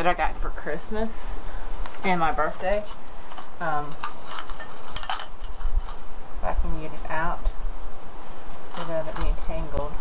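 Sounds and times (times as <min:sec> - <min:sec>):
metal jewelry clinking: 0:03.3 - 0:06.1, 0:08.5 - 0:09.6.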